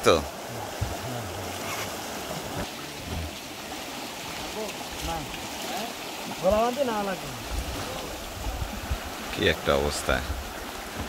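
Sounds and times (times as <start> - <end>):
tidal current rushing through creek: 0.0 - 11.0.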